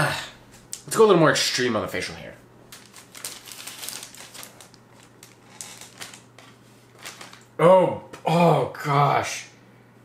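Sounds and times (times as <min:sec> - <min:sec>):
steady low hum: 0:00.0 - 0:10.0
packaging crinkling: 0:02.7 - 0:07.5.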